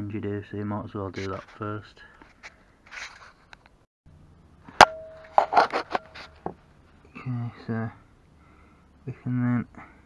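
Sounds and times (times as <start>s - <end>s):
metal tool clinking on metal: 4.8s - 5.6s.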